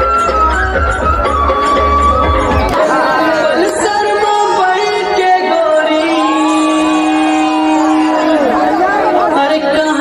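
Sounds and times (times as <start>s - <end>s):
overlapping voices: 2.5s - 5.4s.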